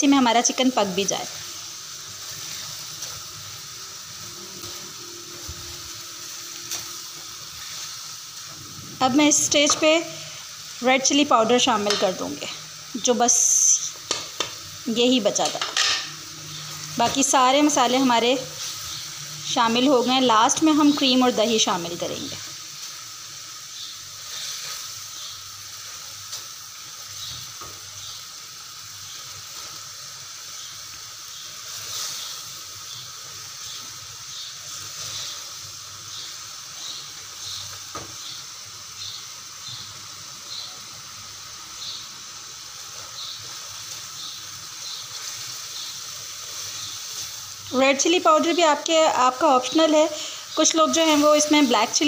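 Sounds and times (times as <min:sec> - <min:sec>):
chicken sizzling in oil: 0:00.0 - 0:52.0.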